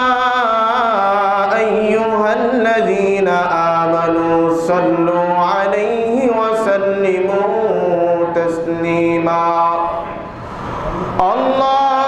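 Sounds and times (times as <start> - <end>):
man chanting a religious recitation: 0.0 - 12.0.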